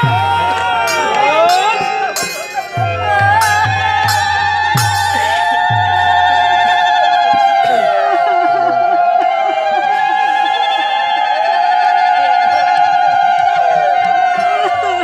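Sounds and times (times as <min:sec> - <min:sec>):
high wavering held note: 0:00.0 - 0:07.8
gliding ornamented melody: 0:00.0 - 0:12.8.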